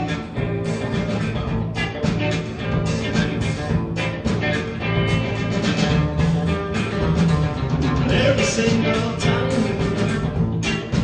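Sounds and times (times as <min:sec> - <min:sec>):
bass guitar: 0:00.0 - 0:11.0
drum kit: 0:00.0 - 0:11.0
electric guitars: 0:00.0 - 0:11.0.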